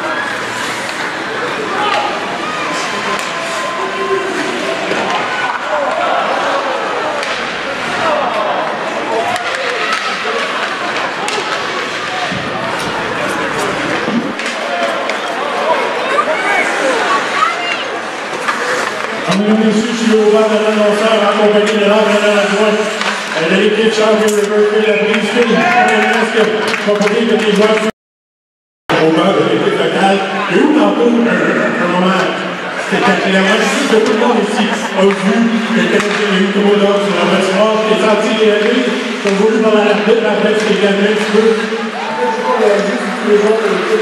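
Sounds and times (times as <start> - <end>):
crowd and bench voices chattering: 0.0 - 27.8, 28.9 - 44.0
hockey sticks and puck clacking: 0.6 - 1.2, 1.8 - 3.7, 7.1 - 15.4, 17.7 - 20.2, 21.4 - 27.9, 35.0 - 41.8.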